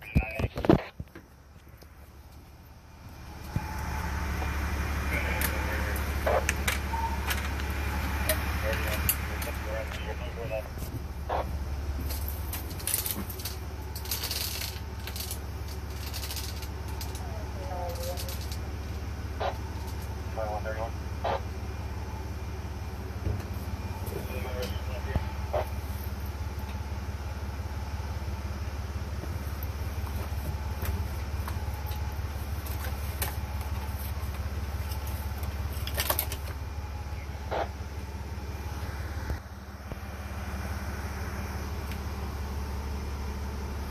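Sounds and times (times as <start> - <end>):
diesel engine idling: 0.0 - 43.9.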